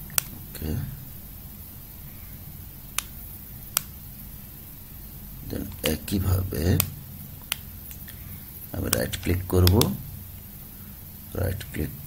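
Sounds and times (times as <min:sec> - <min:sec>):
computer mouse clicks: 0:00.0 - 0:00.4, 0:03.0 - 0:03.9.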